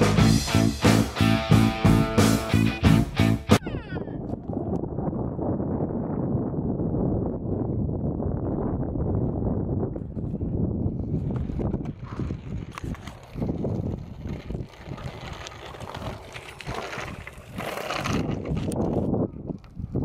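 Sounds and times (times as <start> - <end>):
wind buffeting microphone: 3.6 - 20.0.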